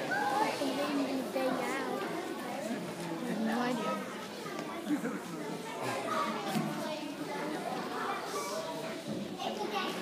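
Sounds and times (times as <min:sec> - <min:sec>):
children chattering and calling out: 0:00.0 - 0:10.0.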